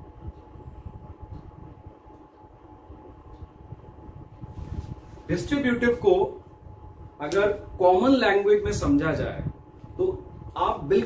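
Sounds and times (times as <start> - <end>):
low room rumble: 0.0 - 11.0
thin steady hum: 0.0 - 11.0.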